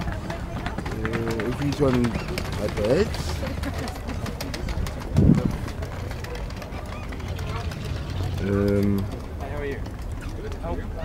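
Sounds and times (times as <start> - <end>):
outdoor market background noise: 0.0 - 11.0.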